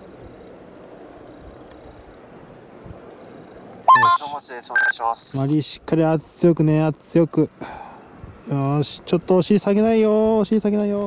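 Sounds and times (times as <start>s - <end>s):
man calling out loudly: 3.9s - 5.5s.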